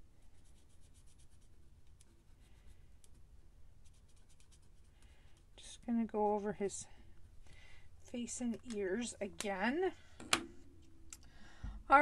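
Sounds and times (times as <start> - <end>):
marker scratching on paper: 0.4 - 2.7, 3.8 - 4.9.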